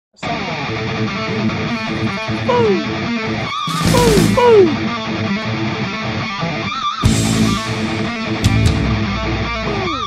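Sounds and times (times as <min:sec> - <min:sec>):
rock backing music: 0:00.3 - 0:10.0.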